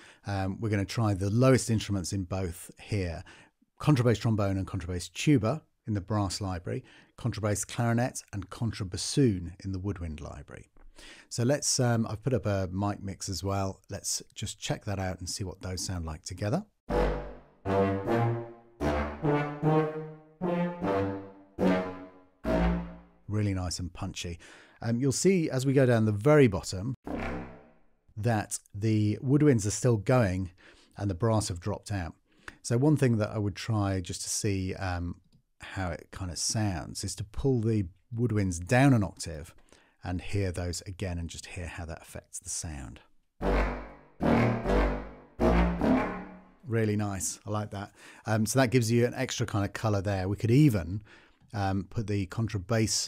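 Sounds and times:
low brass and woodwind staccato notes: 16.9 - 23.2, 43.4 - 46.6.

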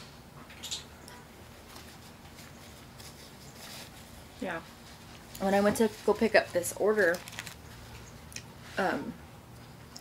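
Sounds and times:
paper napkin rustling: 1.4 - 8.0.

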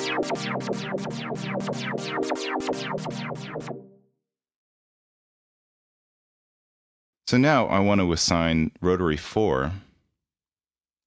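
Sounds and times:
rhythmic bright filter sweeps: 0.0 - 4.1
sustained synthesizer chord: 0.0 - 4.1.

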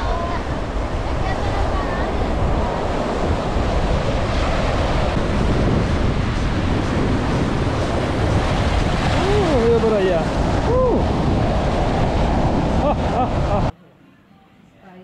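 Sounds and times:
waves breaking on rocky shore: 0.0 - 13.7
wind on microphone: 0.0 - 13.7.

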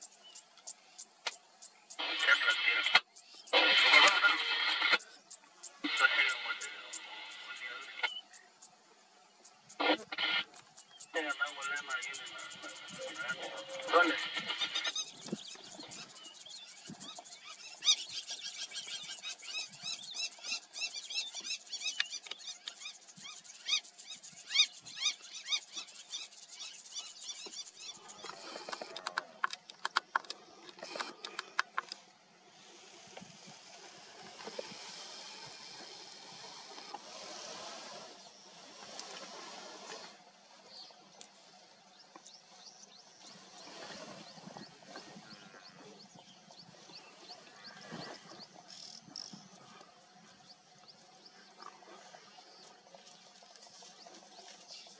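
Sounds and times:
high-pitched bird calls: 12.2 - 28.8
sharp clicks: 28.2 - 32.0
steady hiss: 32.3 - 41.6.

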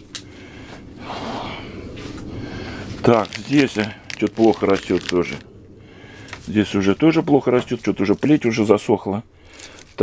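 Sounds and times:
person breathing out: 0.3 - 3.0, 5.8 - 6.4, 9.4 - 10.0.

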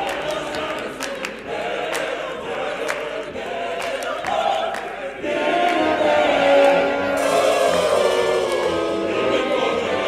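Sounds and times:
opera chorus singing: 0.0 - 10.0.

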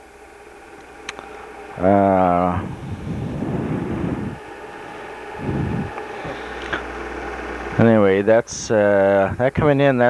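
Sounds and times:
steady hiss: 0.0 - 10.0
wind puffs on microphone: 1.8 - 4.5, 5.1 - 6.0.

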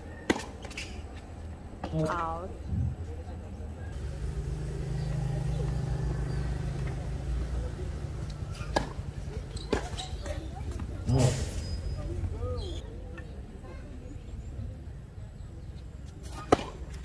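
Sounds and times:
vehicle engine running: 4.0 - 9.8.

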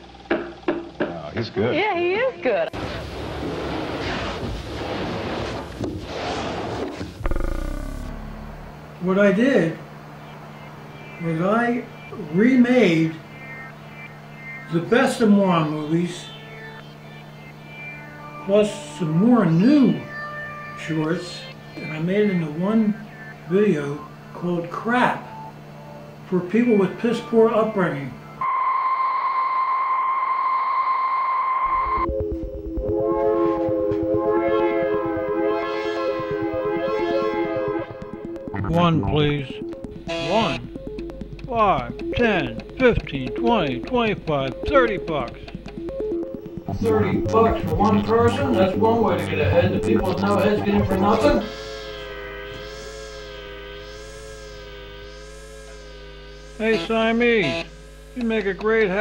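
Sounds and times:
high-pitched electronic tone: 7.1 - 26.0, 33.5 - 41.7, 45.3 - 58.2
held synthesizer chord: 7.2 - 9.0, 32.9 - 41.5, 45.7 - 56.7
low steady hum: 7.2 - 18.0.

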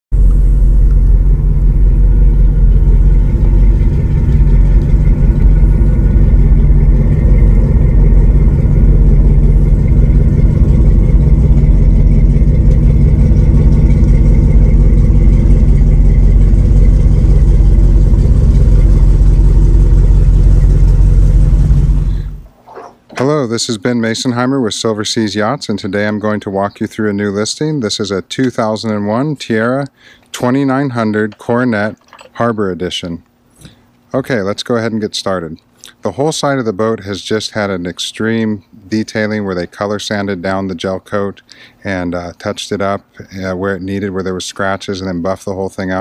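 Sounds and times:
boat engine running: 0.1 - 27.4.

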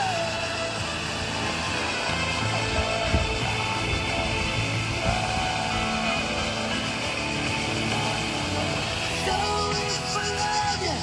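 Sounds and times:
music through small radio speaker: 0.0 - 11.0.

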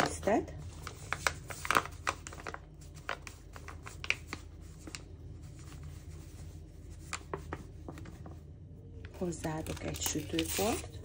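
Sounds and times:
paper bag crinkling: 0.7 - 8.2, 9.2 - 11.0.

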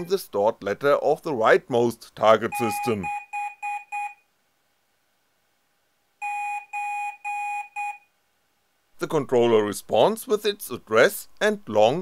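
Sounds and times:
buzzer beeping morse code: 2.5 - 4.2, 6.2 - 8.1.

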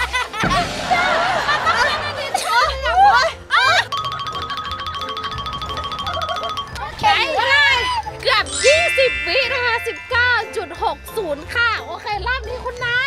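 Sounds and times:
background music: 0.0 - 13.0
ringing tone with fast ticking: 3.9 - 7.8, 8.4 - 13.0
chime-like chord: 8.5 - 11.8.

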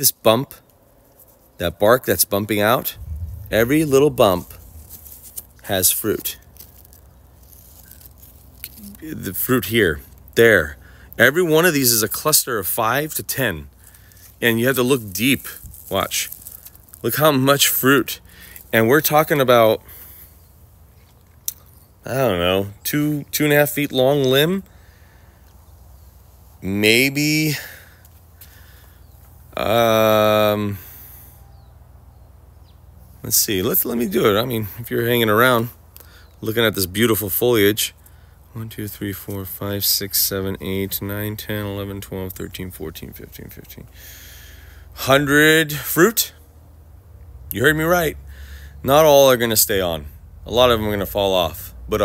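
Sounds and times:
faint steady background noise: 0.0 - 52.0
person speaking: 1.6 - 4.8, 5.6 - 6.5, 8.7 - 13.7
low hum of a voice: 8.8 - 10.8
faint bird chirps: 30.6 - 33.0, 36.0 - 36.5.

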